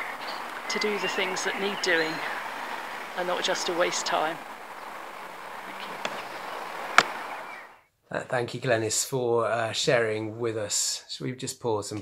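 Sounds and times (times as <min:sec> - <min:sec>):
outdoor background hiss: 0:00.0 - 0:11.6.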